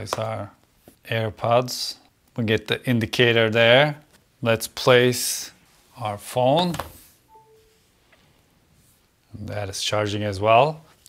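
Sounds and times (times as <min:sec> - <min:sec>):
short electronic chime: 0:07.3 - 0:07.8.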